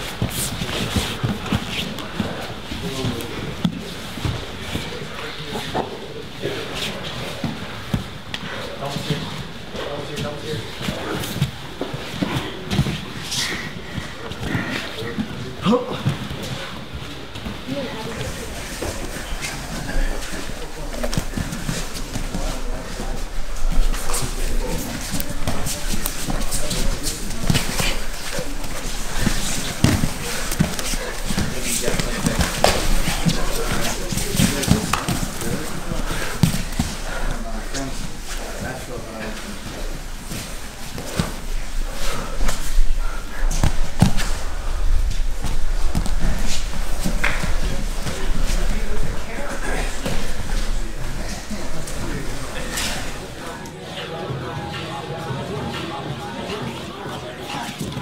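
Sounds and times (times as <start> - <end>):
indistinct voices: 0.0 - 58.0
bodies thudding on mats: 24.7 - 37.0.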